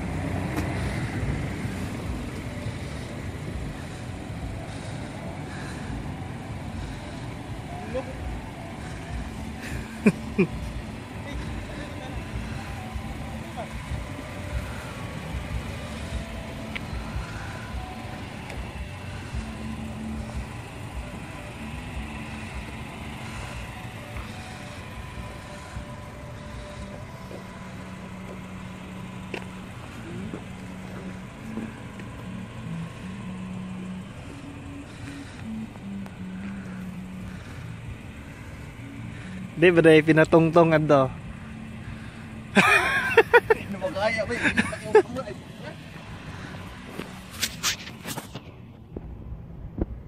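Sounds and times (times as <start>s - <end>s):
cars idling: 0.0s - 50.0s
faint music: 0.0s - 50.0s.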